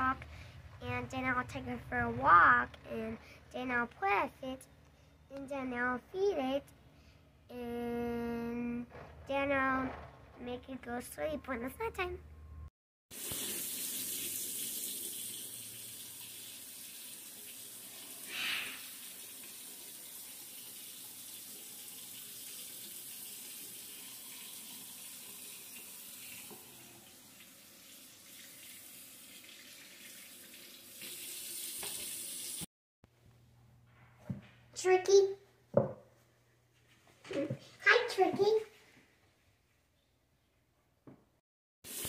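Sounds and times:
faucet water running: 13.1 - 32.7.

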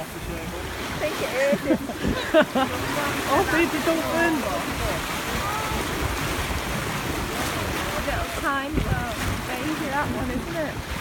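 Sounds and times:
water washing along hull: 0.0 - 11.0
wind buffeting microphone: 0.0 - 11.0.

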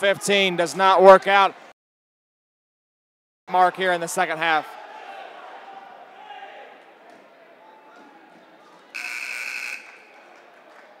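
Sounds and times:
players' voices echoing: 0.0 - 1.7, 3.5 - 11.0
loud buzzer tone: 9.0 - 10.0.

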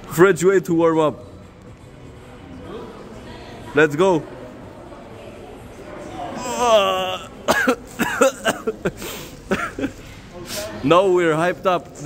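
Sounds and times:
man coughing: 6.4 - 9.9.

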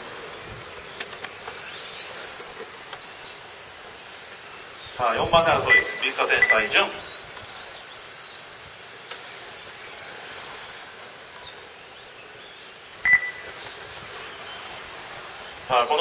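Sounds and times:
rc car motor whine: 0.0 - 16.0
short sharp beep: 5.6 - 6.6, 13.0 - 13.5.

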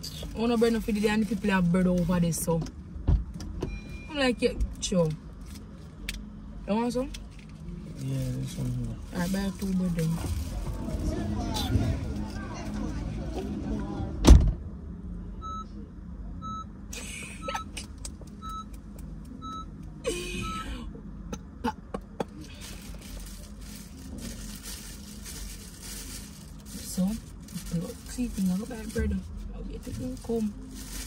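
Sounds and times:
car warning chime beeping: 3.7 - 4.4, 15.4 - 15.7, 16.4 - 16.7, 18.4 - 19.8, 20.4 - 20.7
car door slamming: 14.2 - 14.6.

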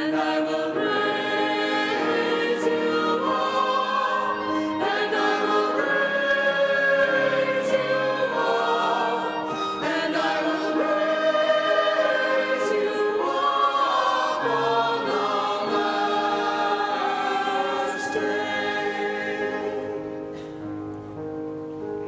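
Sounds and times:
church choir singing a hymn: 0.0 - 20.4.

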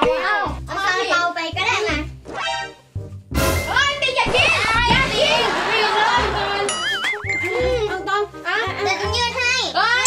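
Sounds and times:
girl talking: 0.0 - 2.1, 7.4 - 10.0
cheerful background music: 0.0 - 10.0.

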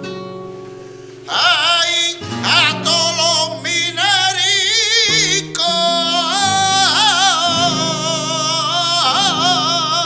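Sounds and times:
flamenco guitar: 0.0 - 10.0
man singing melismatic line: 1.3 - 10.0.

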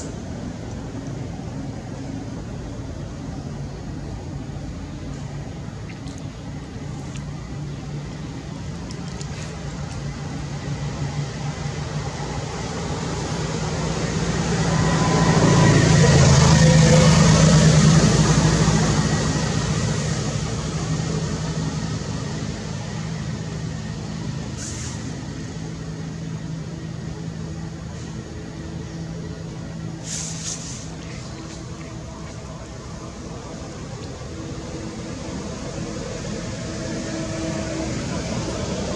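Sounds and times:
steady low hum: 0.0 - 38.9
vehicle driving past: 10.4 - 25.2.

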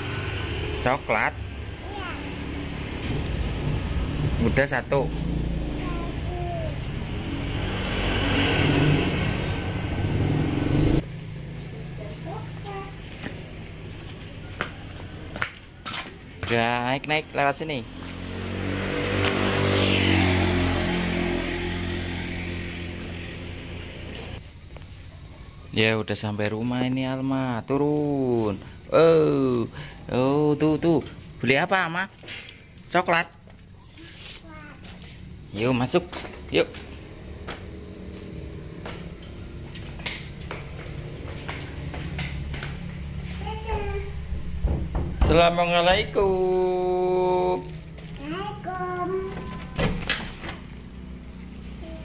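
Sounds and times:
passing vehicle engine: 0.0 - 16.3, 17.0 - 24.4, 34.8 - 44.6
toddler footsteps on concrete: 11.0 - 18.3, 33.4 - 44.4.

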